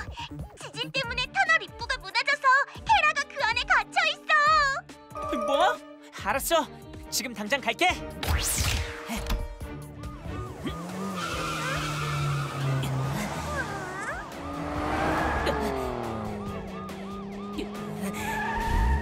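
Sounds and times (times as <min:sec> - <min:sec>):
background music: 0:00.0 - 0:19.0
cartoon car engine running: 0:10.4 - 0:19.0.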